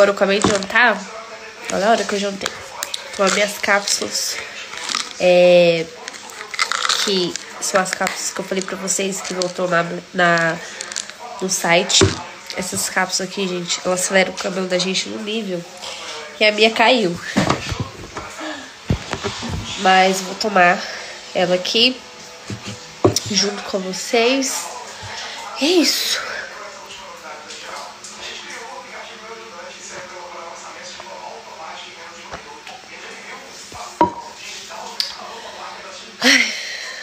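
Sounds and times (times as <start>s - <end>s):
handling noise: 17.2s - 19.8s
metal cup clanking down: 34.0s - 34.4s.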